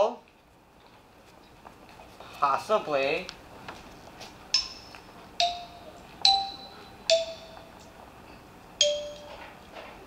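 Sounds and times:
tuned percussion bell-like notes: 4.6 - 7.9, 8.8 - 9.5.

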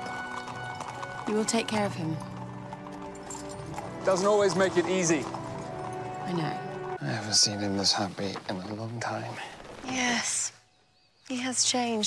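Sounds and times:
soft background music: 0.0 - 9.3
horse hooves clip-clopping on stone: 0.0 - 10.0.

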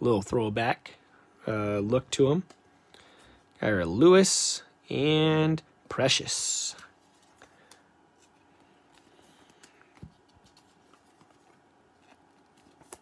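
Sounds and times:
trading cards being handled: 6.8 - 13.0.

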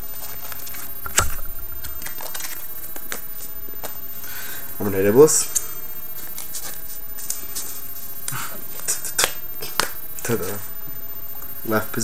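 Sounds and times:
steady background hiss: 0.0 - 12.0.

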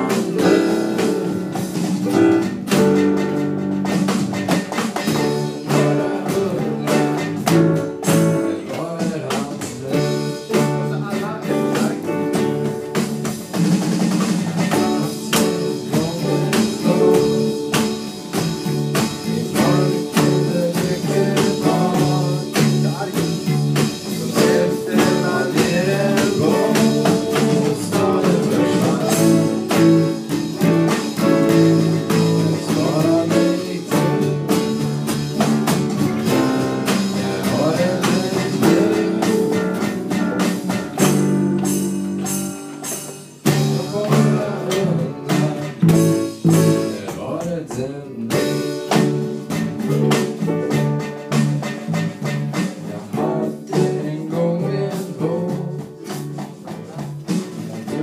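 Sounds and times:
person singing: 0.0 - 2.9, 4.5 - 13.0, 14.6 - 35.0, 36.2 - 51.0, 52.4 - 58.0
drums: 0.0 - 58.0
electric bass guitar: 0.0 - 58.0
guitar: 0.0 - 58.0.

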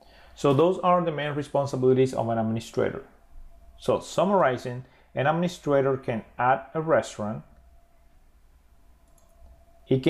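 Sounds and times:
low steady hum: 0.0 - 10.0
computer mouse click: 9.0 - 9.6.

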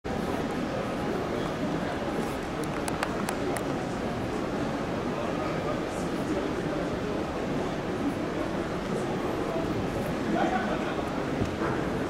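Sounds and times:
indistinct crowd chatter: 0.0 - 12.0
exhibition hall hum: 0.1 - 12.0.

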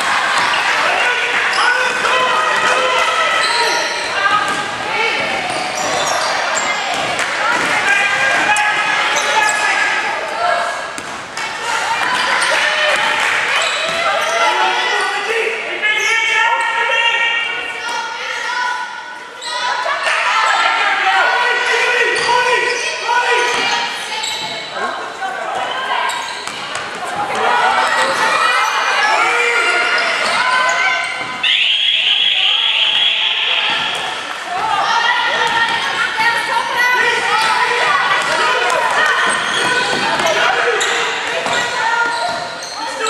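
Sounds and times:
voices calling out in hall: 0.0 - 43.0.

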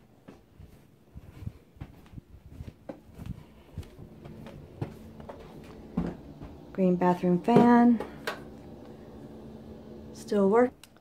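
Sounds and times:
exhaust fan humming: 3.1 - 10.8.

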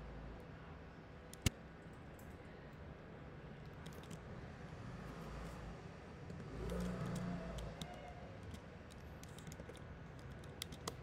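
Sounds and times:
keyboard and mouse clicks: 6.3 - 11.0.

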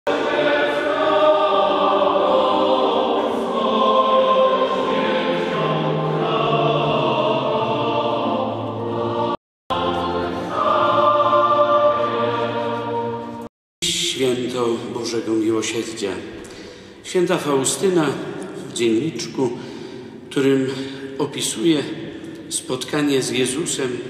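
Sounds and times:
choir singing a hymn: 0.1 - 14.0.

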